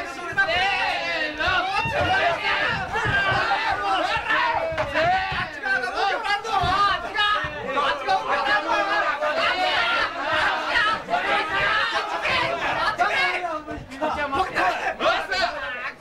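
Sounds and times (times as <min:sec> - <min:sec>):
crowd shouting in a hall: 0:00.0 - 0:16.0.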